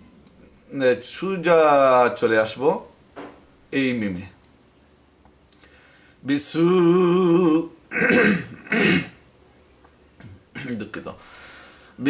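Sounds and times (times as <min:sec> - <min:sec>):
man clearing his throat: 0:07.9 - 0:09.2.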